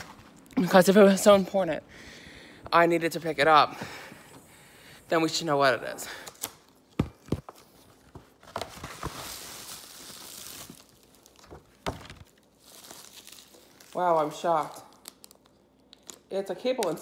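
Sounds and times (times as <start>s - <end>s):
bubble wrap tearing and crinkling: 0.0s - 0.8s, 8.4s - 16.4s.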